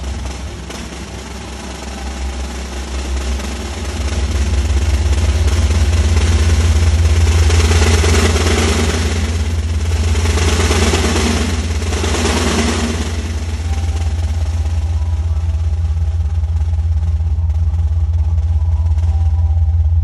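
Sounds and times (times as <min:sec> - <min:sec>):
snare drum roll: 0:00.0 - 0:18.6
deep low rumble: 0:00.0 - 0:20.0.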